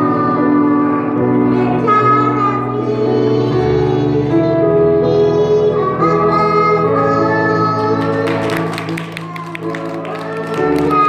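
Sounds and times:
children singing: 0.0s - 11.0s.

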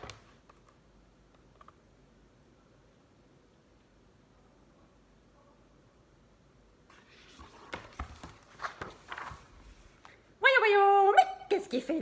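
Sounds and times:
paper rustling: 6.9s - 10.2s.

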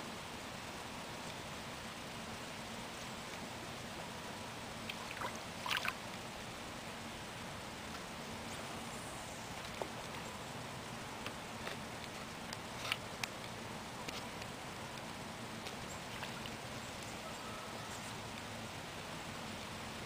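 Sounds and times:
faint steady hiss: 0.0s - 20.0s.

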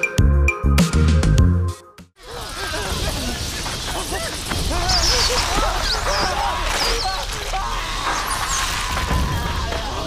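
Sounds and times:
rats squealing and squeaking: 2.5s - 9.1s.

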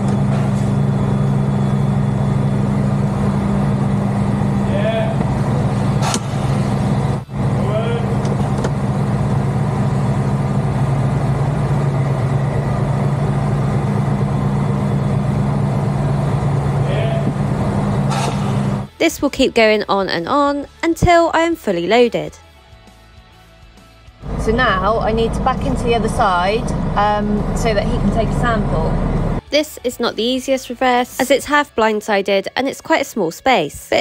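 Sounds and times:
truck diesel engine idling: 6.8s - 18.9s, 24.2s - 29.4s.

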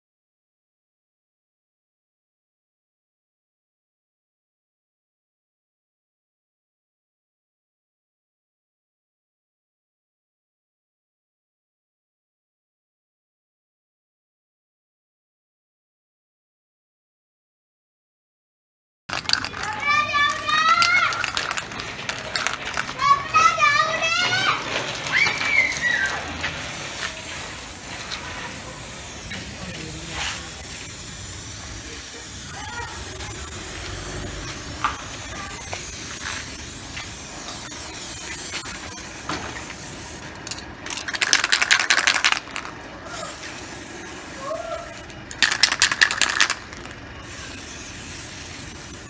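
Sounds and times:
ball rattling in shaken can: 19.1s - 49.0s
spray paint can hissing: 19.1s - 49.0s.

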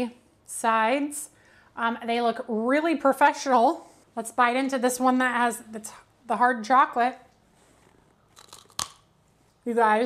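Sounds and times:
candy bar crunch: 8.3s - 9.0s.

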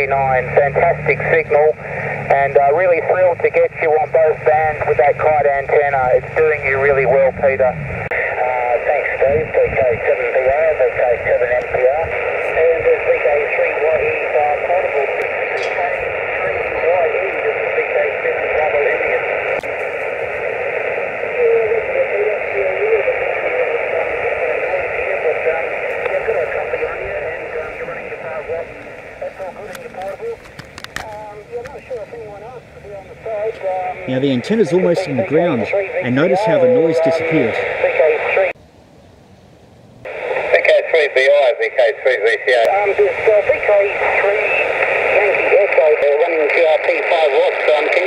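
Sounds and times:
indistinct radio voices: 0.0s - 38.6s, 40.0s - 48.0s
radio band noise: 0.0s - 38.6s, 40.0s - 48.0s
sharp clicks: 29.7s - 32.1s.

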